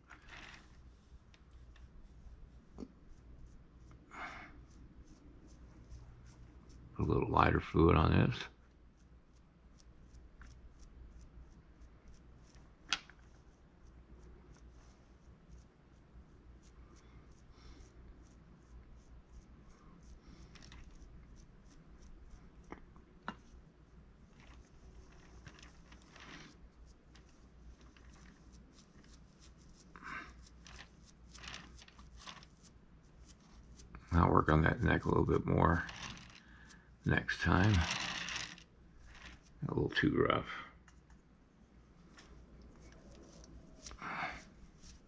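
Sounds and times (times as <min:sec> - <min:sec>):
brush dabbing on clay: 0:00.0 - 0:40.2, 0:40.8 - 0:45.0.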